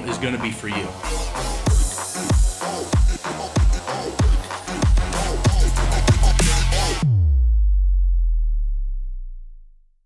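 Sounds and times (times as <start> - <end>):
deep sub-bass tone: 4.7 - 10.0.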